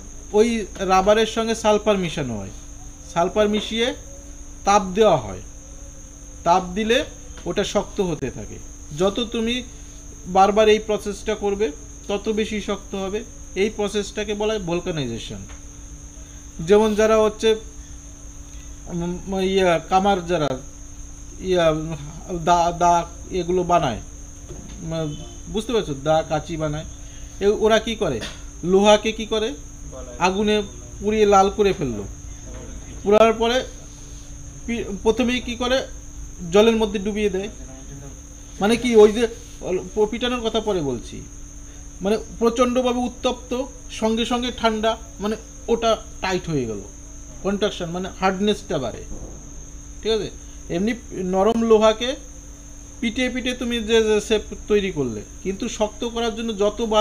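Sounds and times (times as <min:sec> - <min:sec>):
high-pitched whine: 0:00.0 - 0:41.3
man talking: 0:00.3 - 0:04.0, 0:06.5 - 0:09.7, 0:10.3 - 0:15.5, 0:16.6 - 0:17.6, 0:21.4 - 0:24.0, 0:24.8 - 0:33.8, 0:34.7 - 0:41.3, 0:50.0 - 0:52.2.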